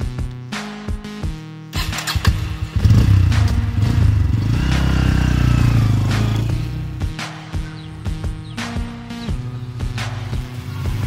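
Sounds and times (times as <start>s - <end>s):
background music: 0.0s - 11.0s
motorcycle engine revving: 1.8s - 11.0s.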